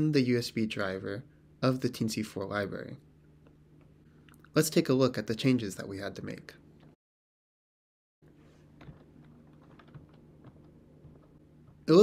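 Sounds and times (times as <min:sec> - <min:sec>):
low steady hum: 0:00.0 - 0:07.0, 0:08.2 - 0:12.0.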